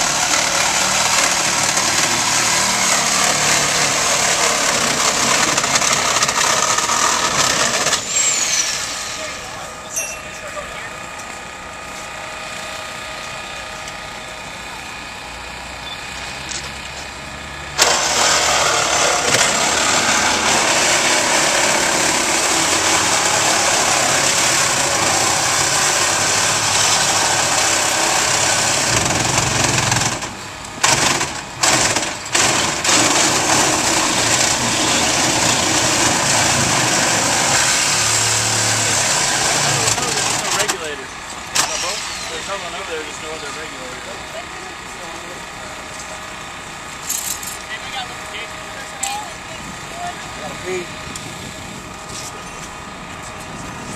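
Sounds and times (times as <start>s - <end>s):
engine running: 0.0s - 53.9s
loud hissing machine noise: 0.0s - 53.9s.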